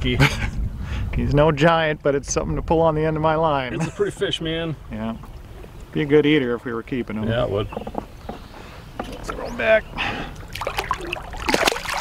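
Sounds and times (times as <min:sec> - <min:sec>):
fish splashing in water: 0:10.4 - 0:12.0.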